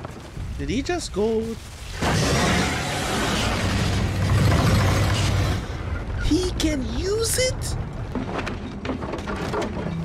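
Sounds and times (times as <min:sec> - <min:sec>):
deep rumble: 0:00.2 - 0:07.0.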